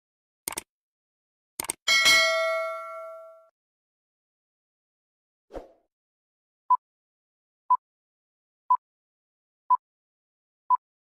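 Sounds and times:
click: 0.5 - 0.7, 1.6 - 1.8
notification bell chime: 1.9 - 3.5.

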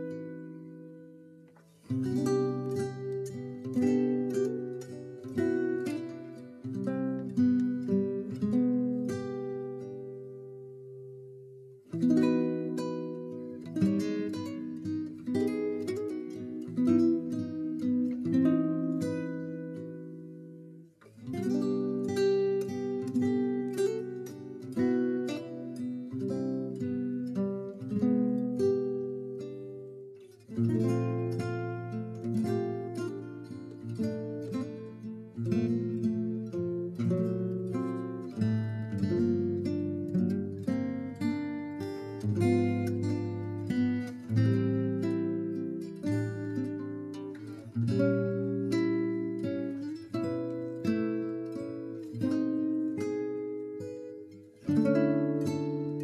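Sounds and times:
acoustic guitar plucking and strumming: 0.0 - 56.0.

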